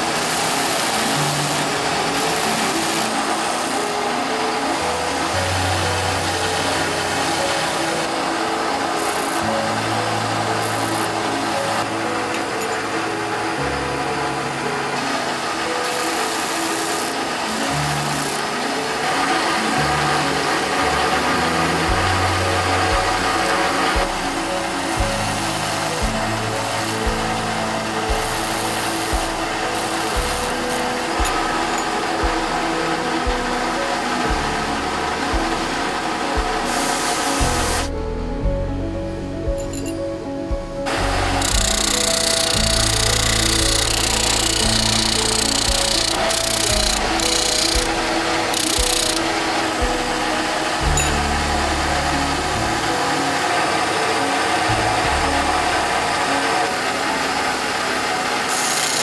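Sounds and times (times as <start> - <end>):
grinding wheel grinding metal: 15.5 - 37.9, 40.9 - 59.0
background music with bass line: 19.6 - 53.3.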